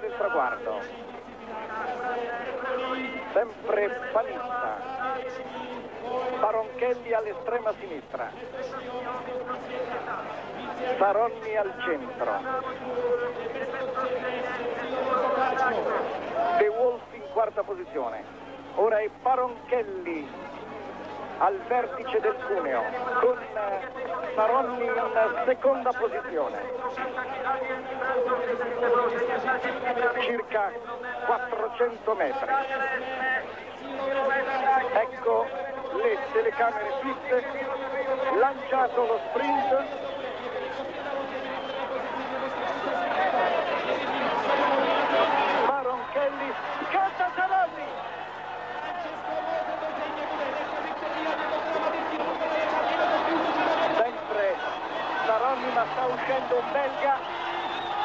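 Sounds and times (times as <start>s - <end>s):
man commentating: 0.0s - 58.0s
crowd cheering and shouting: 9.4s - 17.0s, 32.6s - 58.0s.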